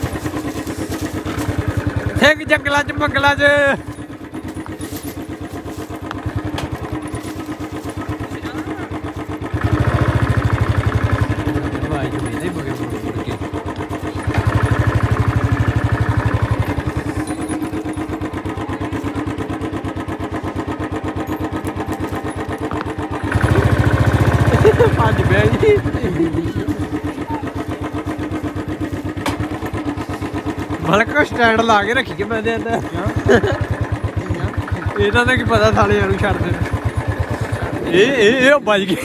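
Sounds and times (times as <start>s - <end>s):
small engine revving: 0.0s - 38.3s.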